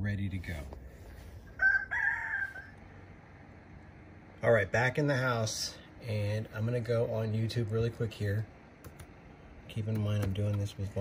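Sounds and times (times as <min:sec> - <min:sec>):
rooster crowing: 0:01.4 - 0:03.1.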